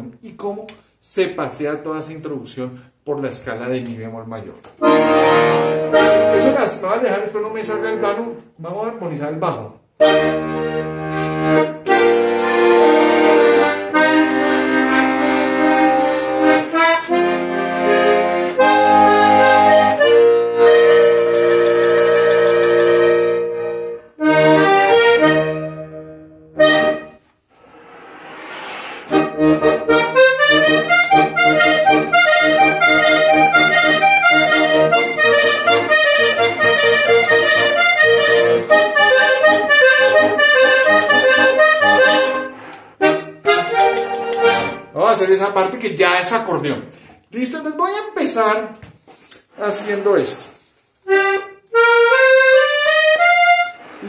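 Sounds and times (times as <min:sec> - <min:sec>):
button accordion playing: 0:04.8 - 0:08.4, 0:10.0 - 0:27.3, 0:29.1 - 0:45.0, 0:51.0 - 0:54.0.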